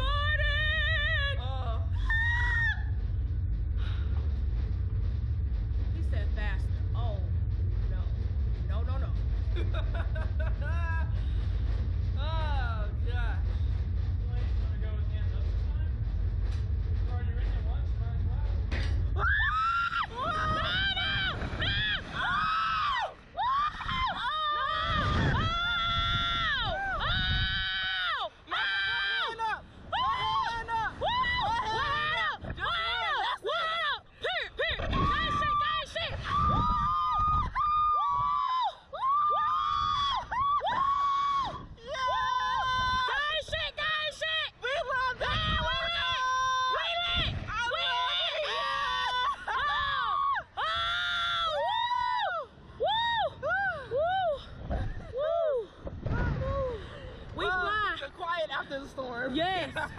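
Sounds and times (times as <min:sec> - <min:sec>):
low rumble: 0:00.0 - 0:59.9
women screaming: 0:02.0 - 0:02.9, 0:19.2 - 0:56.8.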